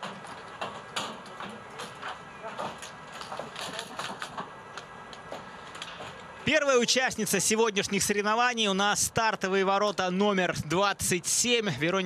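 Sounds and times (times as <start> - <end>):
small clicks and knocks: 0.0 - 6.3
faint voices: 0.8 - 4.5.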